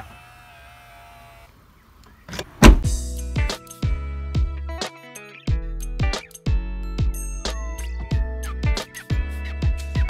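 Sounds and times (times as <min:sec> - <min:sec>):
loud bass-heavy music: 0:02.6 - 0:04.7.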